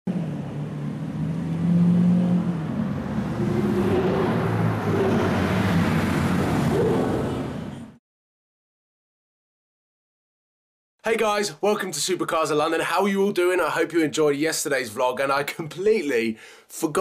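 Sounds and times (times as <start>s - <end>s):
sports car engine revving: 0.1s - 7.6s.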